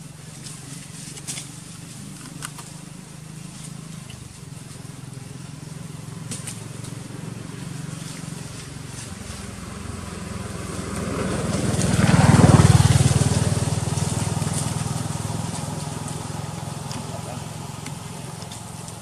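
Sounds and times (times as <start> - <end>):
vehicle engine passing by: 0.0 - 19.0.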